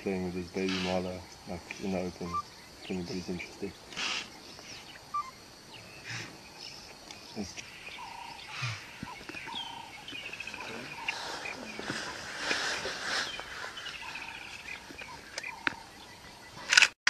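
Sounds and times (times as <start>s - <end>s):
bird singing: 0.0s - 16.8s.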